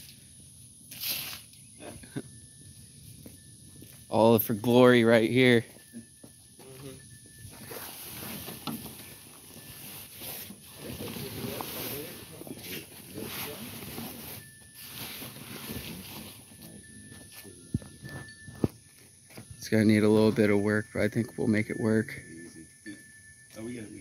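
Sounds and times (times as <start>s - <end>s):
fabric cover rustling and scraping: 7.5s - 16.7s.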